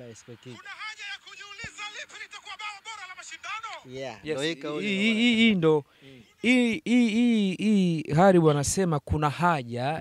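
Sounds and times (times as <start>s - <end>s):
tinny commentator voice: 0.0s - 8.4s.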